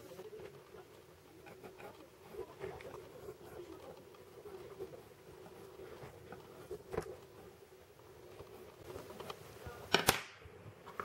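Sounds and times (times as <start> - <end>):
pencil scratching on paper: 1.4 - 3.9.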